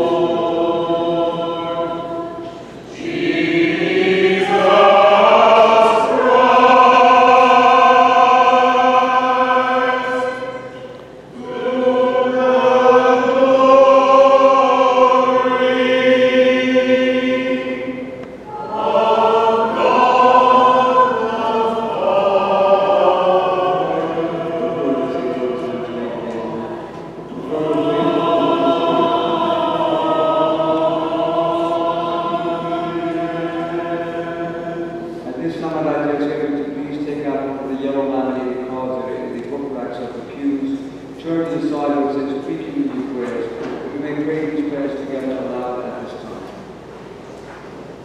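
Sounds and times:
choir chanting a hymn: 0.0 - 46.4.

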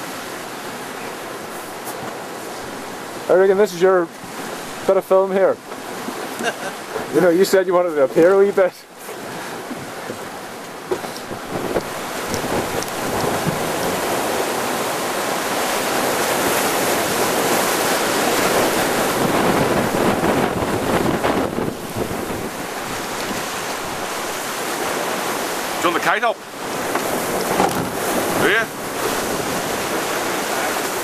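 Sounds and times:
rough sea rushing past hull: 0.0 - 31.0
wind buffeting microphone: 9.1 - 25.8, 26.5 - 31.0.

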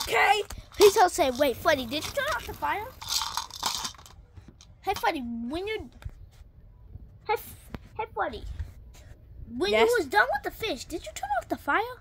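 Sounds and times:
plastic toy pieces clattering: 0.0 - 5.1.

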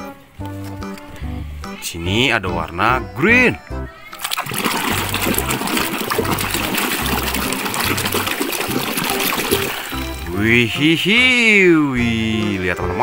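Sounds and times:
water splashing and sloshing: 4.1 - 10.4.

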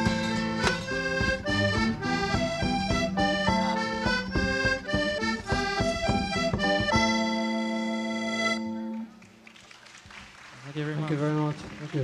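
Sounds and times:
button accordion folk tune: 0.0 - 9.1
acoustic guitar strumming: 0.0 - 9.2.

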